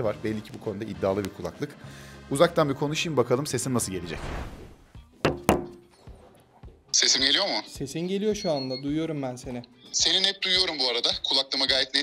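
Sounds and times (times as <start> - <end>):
phone knocking on wooden table: 5.2 - 5.8.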